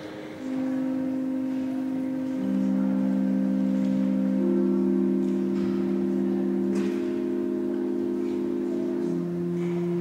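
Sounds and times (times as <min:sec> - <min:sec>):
organ chords: 0:00.0 - 0:10.0.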